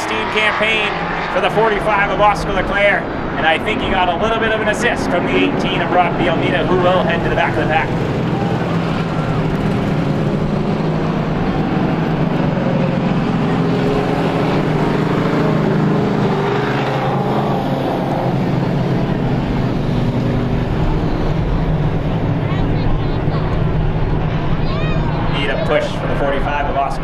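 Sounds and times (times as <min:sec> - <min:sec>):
race car engines droning: 0:00.0 - 0:27.0.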